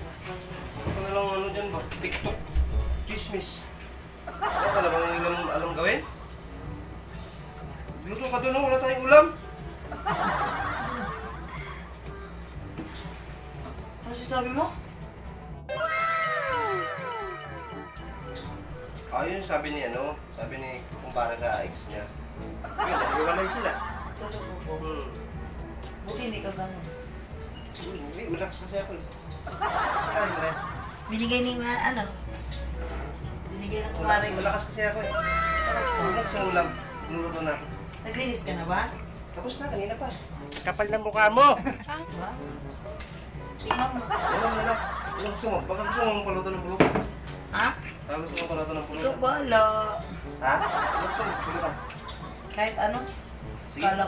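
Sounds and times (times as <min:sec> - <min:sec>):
long downward gliding cry with echoes: 0:15.7 - 0:18.2
glass bottle clinking on wine glass: 0:43.6 - 0:44.0.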